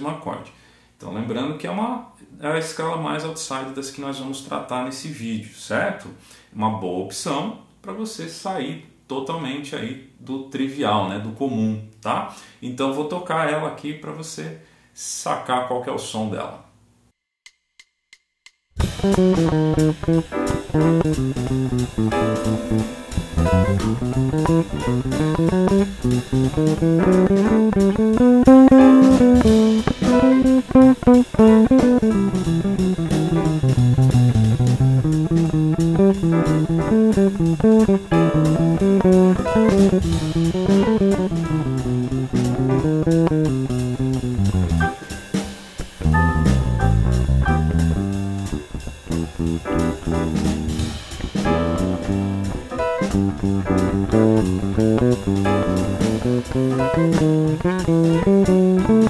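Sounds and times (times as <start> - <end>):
electric bass melodic line: 18.8 - 45.2, 46.0 - 59.0.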